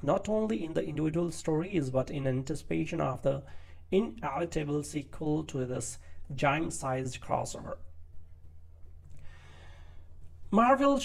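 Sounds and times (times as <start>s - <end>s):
steady low hum: 0.0s - 11.0s
person breathing in through mouth: 9.1s - 10.2s.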